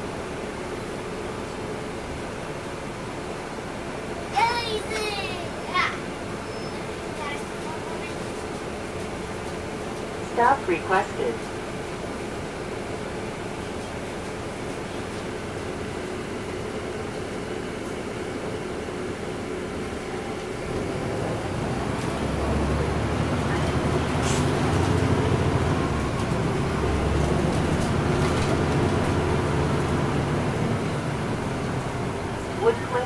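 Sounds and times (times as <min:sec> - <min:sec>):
bus diesel engine idling: 0:00.0 - 0:33.0
bus engine accelerating: 0:00.0 - 0:33.0.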